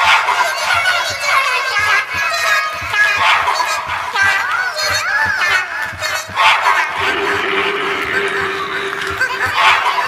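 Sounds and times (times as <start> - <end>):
overlapping distorted cartoon songs: 0.0 - 10.0
squeaky animal-like voices: 6.9 - 10.0
steady beat: 6.9 - 10.0.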